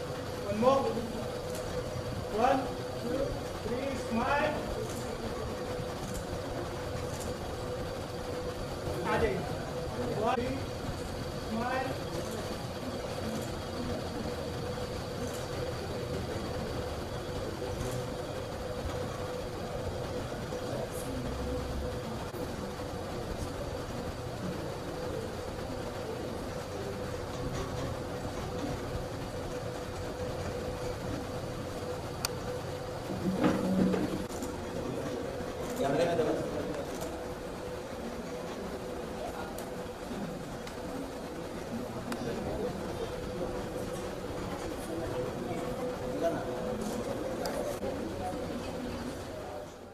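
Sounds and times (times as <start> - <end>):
constant hum: 0.0 - 49.9
low chatter of a group: 0.0 - 49.9.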